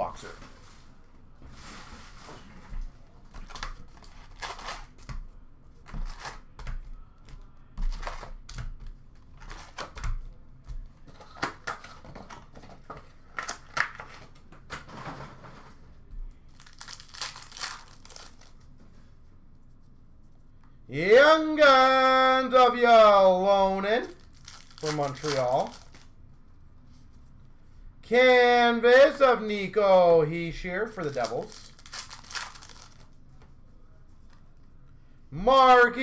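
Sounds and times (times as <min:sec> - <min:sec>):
packaging crinkling and tearing: 0:03.4 - 0:05.0, 0:16.5 - 0:18.7, 0:24.1 - 0:26.1, 0:31.0 - 0:33.2.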